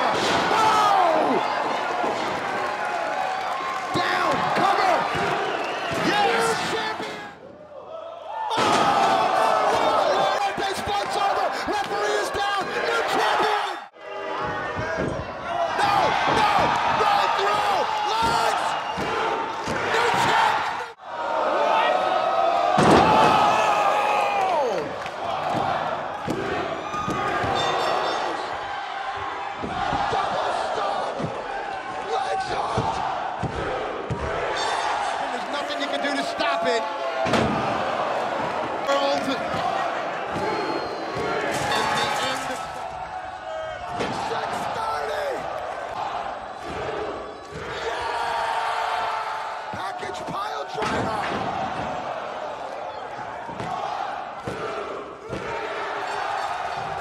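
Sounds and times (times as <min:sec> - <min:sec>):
crowd cheering and shouting: 0:00.0 - 0:57.0.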